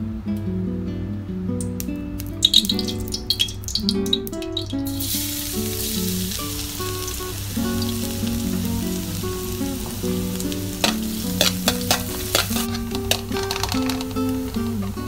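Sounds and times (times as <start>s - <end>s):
garlic sizzling in hot oil: 2.4s - 15.0s
metal spatula scraping wok: 10.8s - 14.2s.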